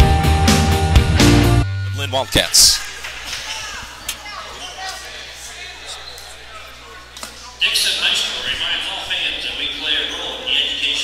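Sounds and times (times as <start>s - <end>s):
crowd chatter: 1.8s - 11.0s.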